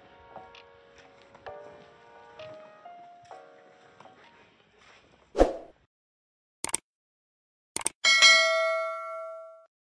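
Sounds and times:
metallic bell ding: 0:08.0 - 0:09.7.

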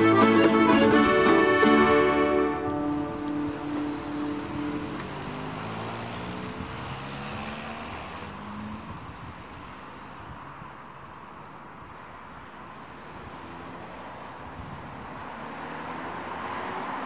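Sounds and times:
accordion chord: 0:00.0 - 0:05.4
vehicle passing: 0:00.0 - 0:08.9.

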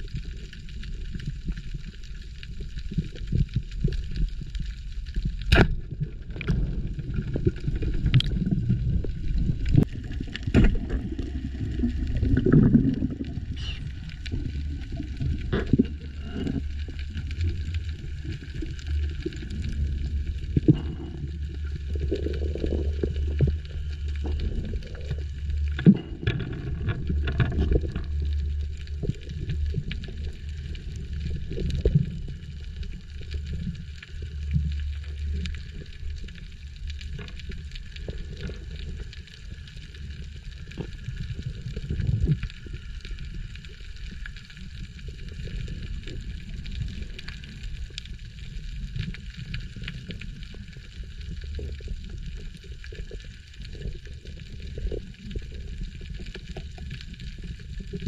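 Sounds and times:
muffled underwater rumble: 0:00.0 - 0:58.0.

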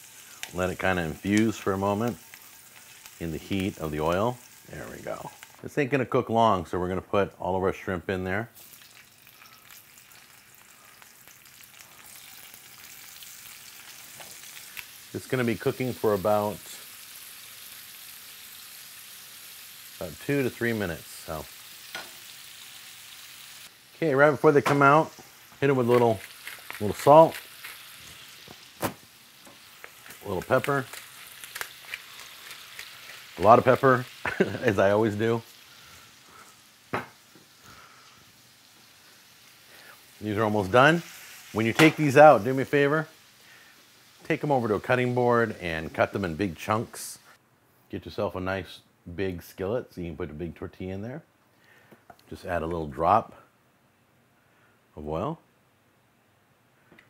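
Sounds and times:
shrimp sizzling in hot oil: 0:00.0 - 0:05.7, 0:08.5 - 0:47.4
light crackling: 0:00.0 - 0:07.4, 0:08.5 - 0:47.4.

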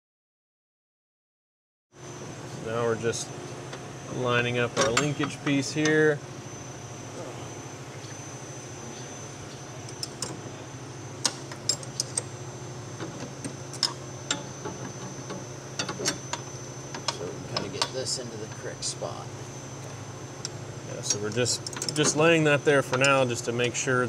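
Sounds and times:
steady low hum: 0:02.0 - 0:24.0.

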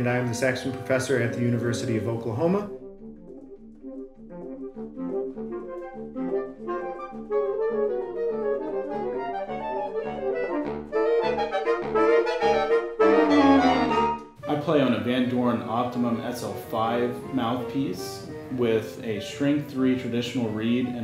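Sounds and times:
saxophone quartet playing: 0:05.1 - 0:21.0.

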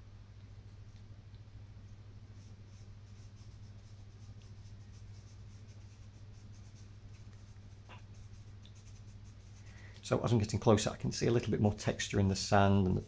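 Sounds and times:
charcoal scratching on paper: 0:02.2 - 0:09.8.

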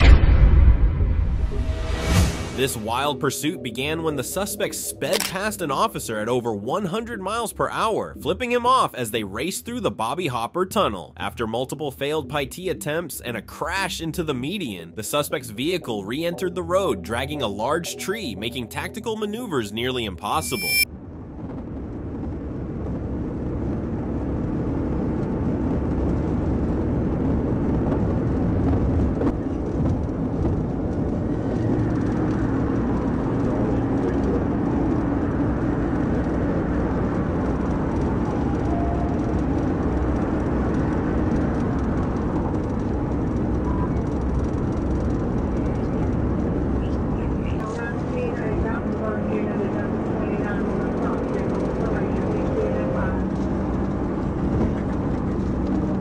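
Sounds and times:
car road and wind noise: 0:20.9 - 0:56.0.

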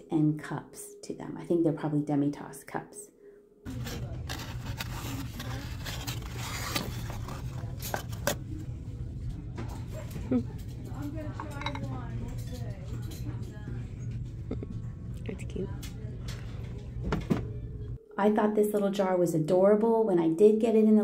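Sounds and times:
steady low hum: 0:03.7 - 0:18.2
ceramics clicking and knocking: 0:10.6 - 0:13.5.

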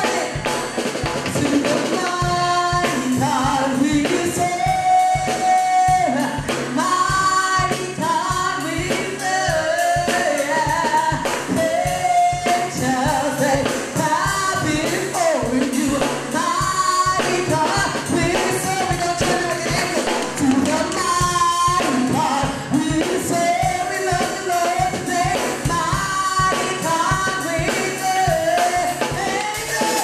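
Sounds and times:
band with drums and tambourine: 0:00.0 - 0:30.0
woman singing into a microphone: 0:00.0 - 0:30.0.

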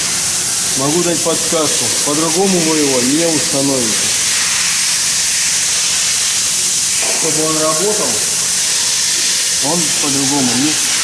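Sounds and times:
loud steady hiss: 0:00.0 - 0:11.0
man speaking: 0:07.0 - 0:08.2, 0:09.6 - 0:10.8.

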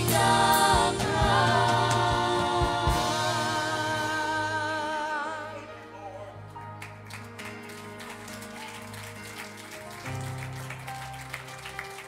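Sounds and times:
soft instrumental band music: 0:00.0 - 0:12.0.

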